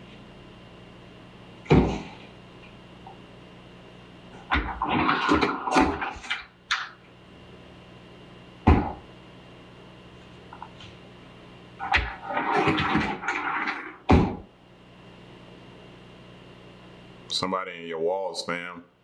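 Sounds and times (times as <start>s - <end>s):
closet doors rattling and scraping: 11.8s - 14.4s.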